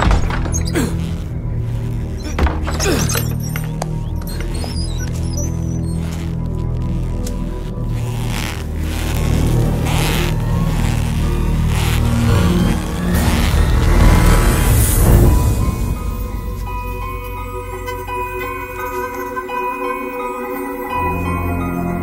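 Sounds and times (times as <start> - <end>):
rushes of noise: 0.0 - 17.4
suspenseful film score drones: 0.0 - 22.0.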